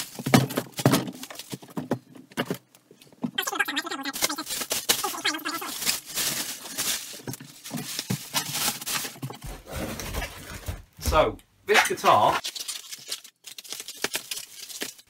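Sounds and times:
plastic packaging crinkling: 0.0 - 1.8, 3.4 - 10.5, 12.4 - 15.0.

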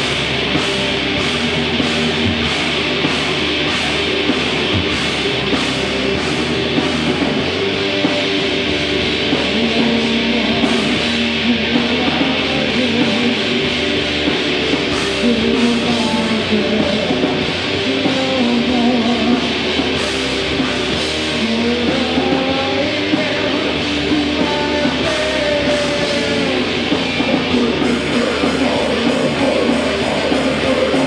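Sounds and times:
distorted electric guitars: 0.0 - 31.0
drums: 0.0 - 31.0.

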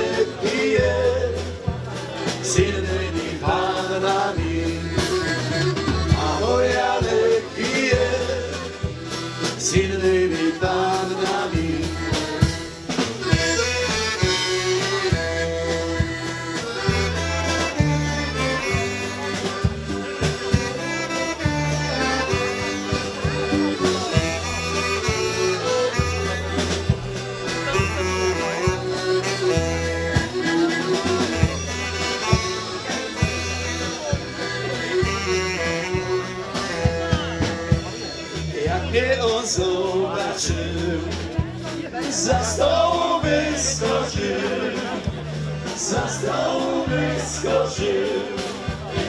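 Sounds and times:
folk dance band playing: 0.0 - 49.0.

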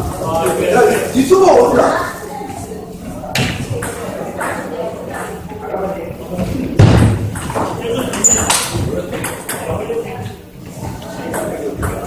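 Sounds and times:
background chatter: 0.0 - 12.0
loud thump: 6.8 - 7.4.

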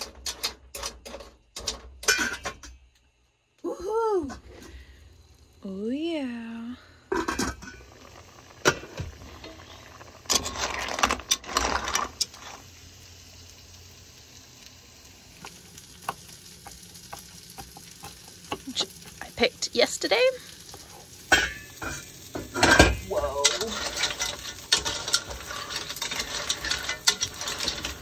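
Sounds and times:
metal clatter of pot lids and utensils: 0.0 - 2.8, 7.1 - 8.0, 8.6 - 12.4, 21.3 - 28.0
food sizzling in a skillet: 3.7 - 28.0.

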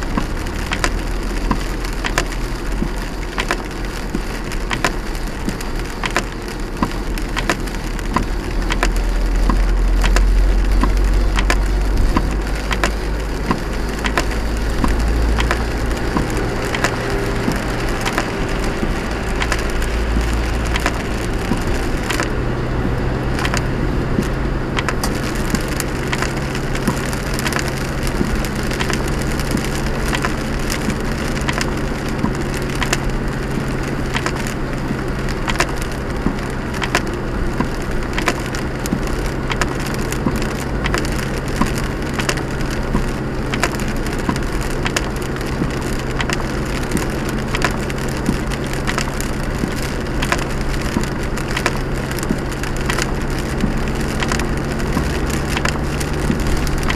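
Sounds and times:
low engine hum: 0.0 - 56.9
rain hitting windscreen: 0.0 - 56.9
road and tyre noise: 0.0 - 56.9
windscreen wipers: 0.0 - 56.9.

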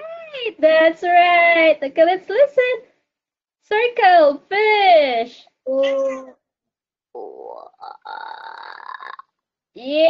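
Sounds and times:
people talking: 0.0 - 2.9, 3.7 - 6.3, 9.8 - 10.0
child's voice over video call: 5.6 - 6.4.

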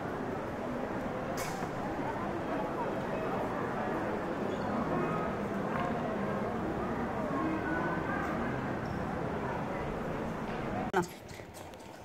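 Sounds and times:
faint indistinct voices: 0.0 - 12.0
outdoor background noise: 0.0 - 12.0.

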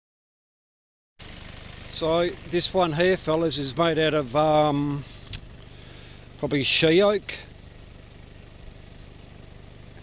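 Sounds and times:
low rumble with faint pulse: 1.3 - 10.0.

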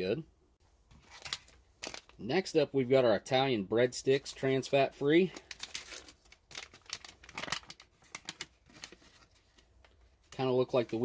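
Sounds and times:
foil pouch crinkling: 1.0 - 2.2, 5.3 - 11.0.

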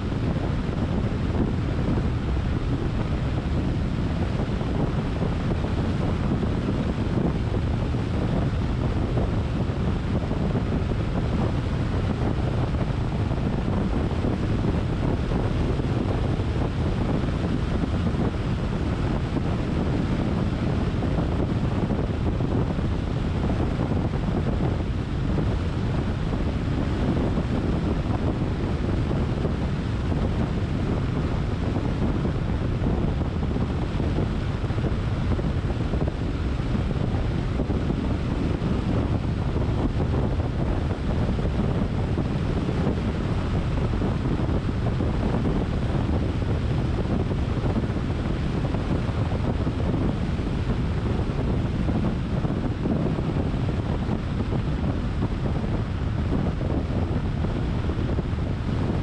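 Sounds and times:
car tyre noise on asphalt: 0.0 - 59.0
wind rushing over microphone: 0.0 - 59.0.

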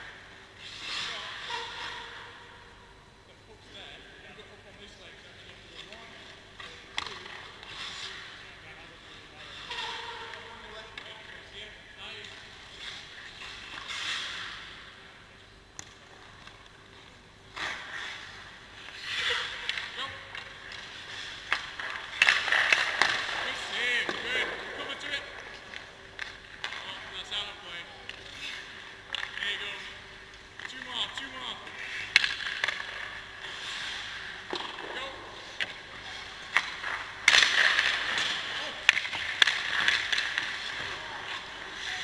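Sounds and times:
skate blades scraping ice: 0.0 - 2.3, 6.6 - 8.6, 12.2 - 14.8, 17.5 - 27.6, 30.6 - 42.0.

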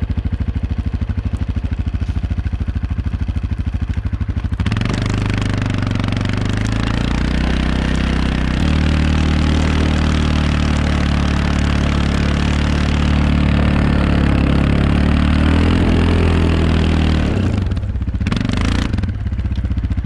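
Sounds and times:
atv engine under load: 0.0 - 20.0.

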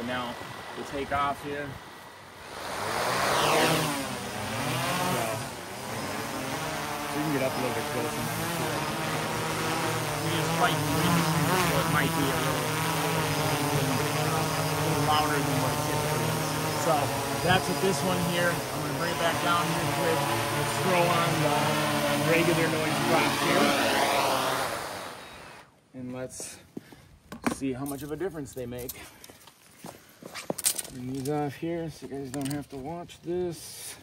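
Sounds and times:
drone rotors buzzing hum: 0.0 - 25.7
footsteps on stone pavers: 26.4 - 27.5, 28.8 - 30.9.

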